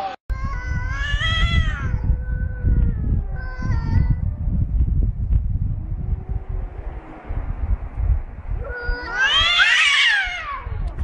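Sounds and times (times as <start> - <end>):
cat yowling: 0.8 - 4.3, 8.6 - 11.0.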